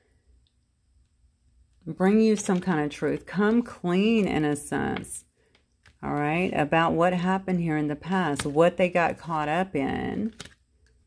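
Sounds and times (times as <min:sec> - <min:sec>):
woman speaking: 0:01.8 - 0:05.3, 0:06.0 - 0:10.4.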